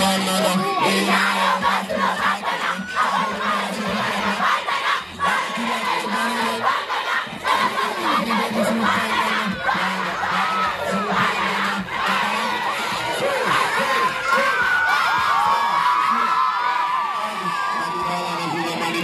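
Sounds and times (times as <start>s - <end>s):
crowd shouting and cheering: 0.0s - 19.0s.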